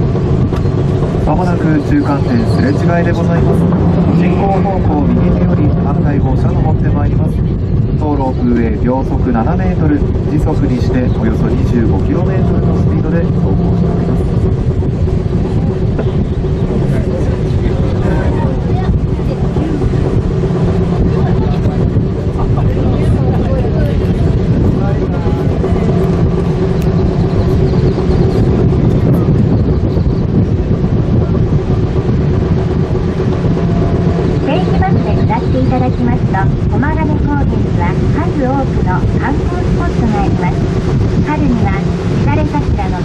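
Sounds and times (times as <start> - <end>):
cable car cabin rumble: 0.0 - 43.0.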